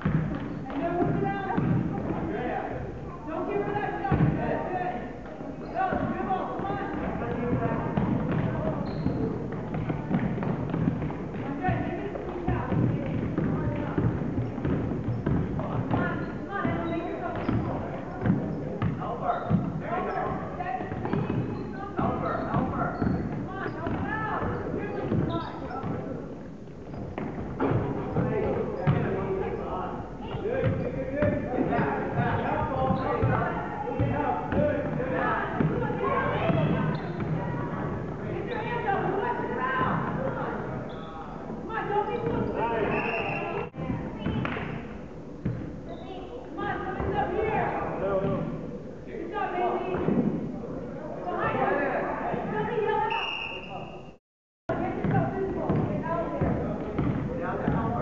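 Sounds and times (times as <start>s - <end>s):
basketball bouncing on hardwood: 0.0s - 2.3s, 5.9s - 26.0s, 55.0s - 57.9s.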